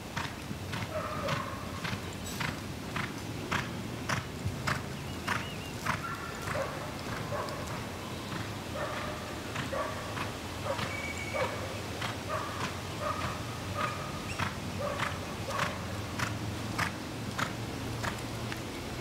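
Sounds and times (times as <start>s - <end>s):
horse hoofbeats on sand: 0.0s - 19.0s.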